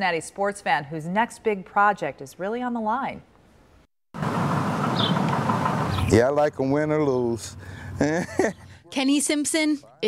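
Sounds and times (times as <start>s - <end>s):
passing traffic rush: 4.2s - 8.1s.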